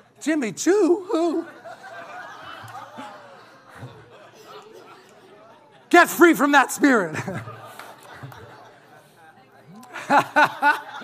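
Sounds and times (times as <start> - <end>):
murmur of voices in a hall: 0.0 - 11.0
man speaking loudly: 0.2 - 1.6, 5.9 - 7.3.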